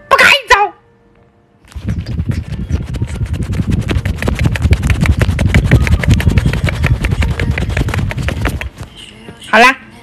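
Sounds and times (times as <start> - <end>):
skin rubbing against phone: 1.7 - 9.1.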